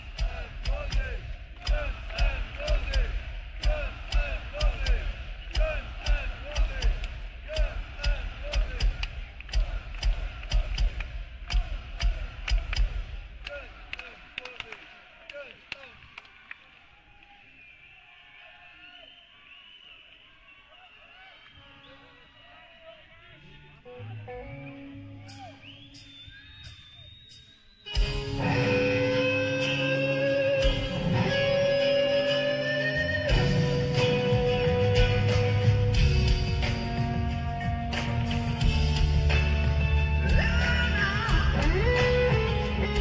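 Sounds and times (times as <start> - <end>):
pounding drums: 0.0 - 13.9
crowd cheering and whistling: 15.9 - 23.6, 24.6 - 33.9
rock band playing: 27.9 - 43.0.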